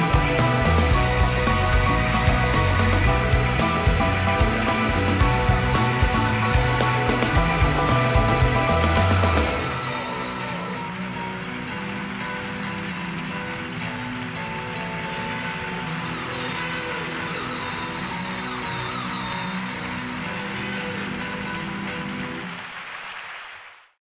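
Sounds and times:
keyboard sustained chords: 0.0 - 22.4
audience applauding: 0.0 - 24.0.

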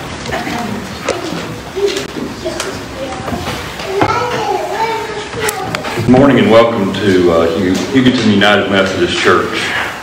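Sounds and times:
young children talking: 0.2 - 6.5.

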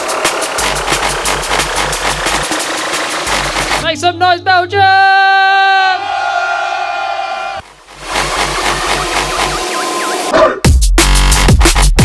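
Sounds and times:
drum and bass music: 0.0 - 4.8, 7.6 - 12.0
crowd cheering and whistling: 5.8 - 10.3.

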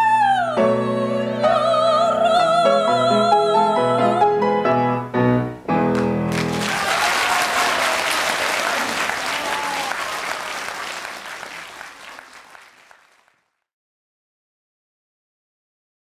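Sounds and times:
audience applauding: 5.9 - 13.5.

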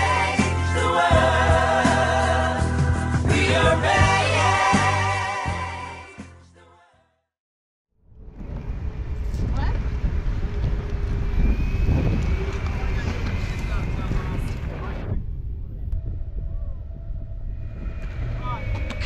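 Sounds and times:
thin steady whine: 8.1 - 19.0
wind buffeting microphone: 8.1 - 19.0.

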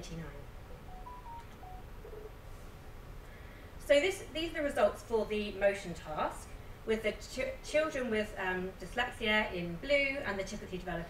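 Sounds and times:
lecture hall room noise: 0.0 - 11.0.

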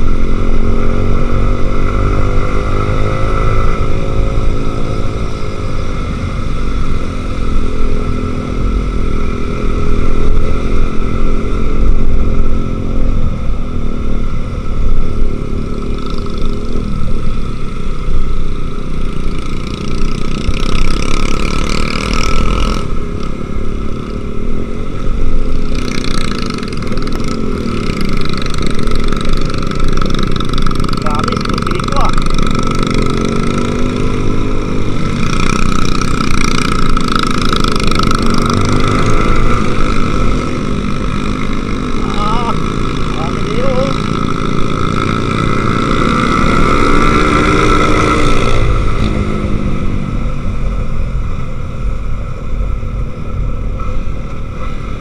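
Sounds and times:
motorcycle engine running: 0.0 - 55.0.

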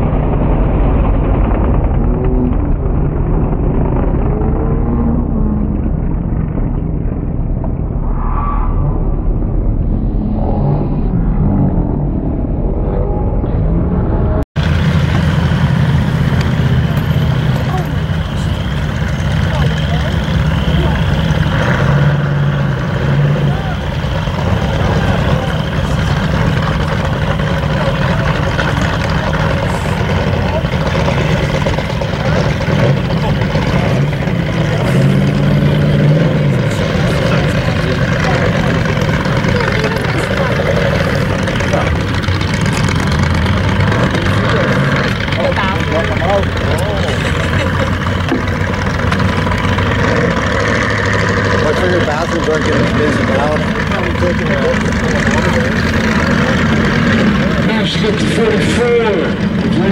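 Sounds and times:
race car engines idling: 14.5 - 59.9.

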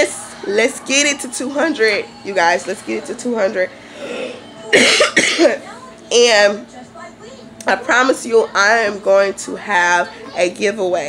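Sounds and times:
woman coughing: 4.7 - 5.6.

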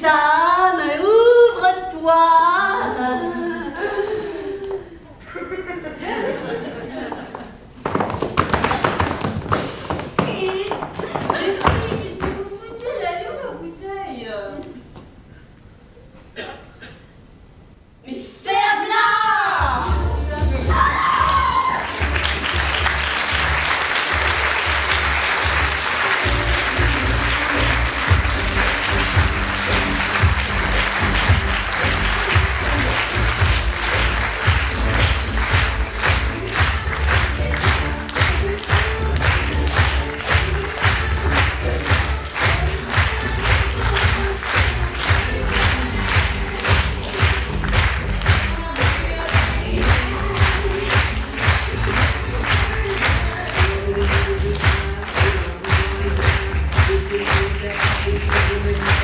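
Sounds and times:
audience applause: 6.4 - 12.3, 21.3 - 59.0
rhythmic clapping: 6.4 - 12.5, 21.3 - 59.0
pop music with heavy bass: 19.6 - 59.0.

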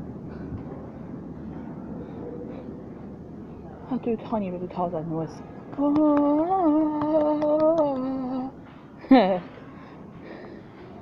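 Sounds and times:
glasshouse background noise: 0.0 - 11.0
faint indistinct voices: 0.3 - 11.0.

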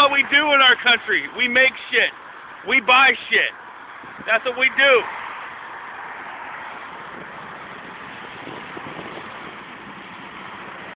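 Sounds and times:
road traffic hiss: 0.0 - 10.9
wind on microphone: 4.0 - 4.4, 6.5 - 10.9.

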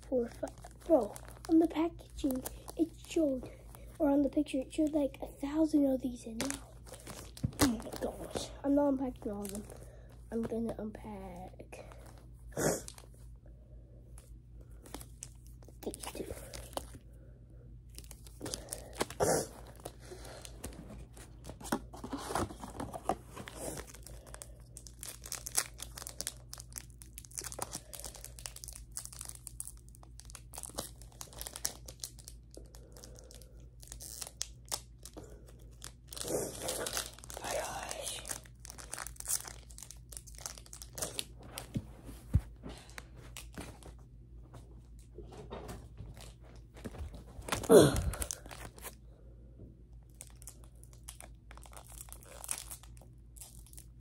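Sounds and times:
foil wrapper tearing and crinkling: 0.0 - 3.2, 22.3 - 41.7, 46.9 - 49.0, 50.1 - 54.0.

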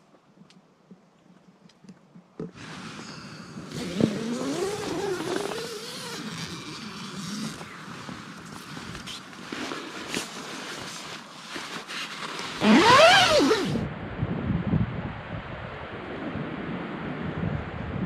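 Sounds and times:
tent zipper: 2.5 - 13.8
nylon rustling: 3.6 - 13.8.

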